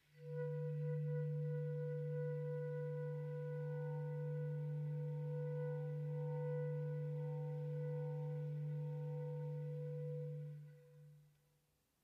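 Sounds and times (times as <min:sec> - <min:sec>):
sustained flute note: 0:00.0 - 0:11.2
low bass clarinet tone: 0:00.2 - 0:11.2.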